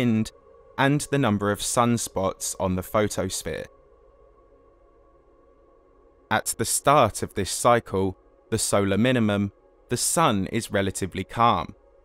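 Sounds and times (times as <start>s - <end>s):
faint ambient music: 0.0s - 12.0s.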